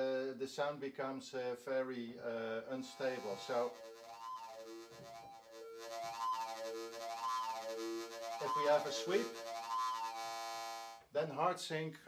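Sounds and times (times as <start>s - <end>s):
buzzing synth tone sweeping: 2.8s - 11.0s.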